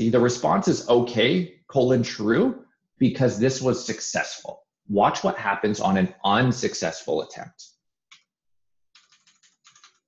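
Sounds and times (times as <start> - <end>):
computer keyboard keystrokes: 9.0 - 10.0.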